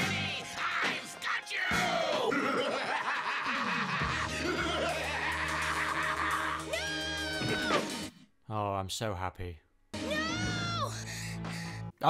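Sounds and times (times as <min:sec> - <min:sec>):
cartoon character mocking laugh: 0:02.3 - 0:06.8.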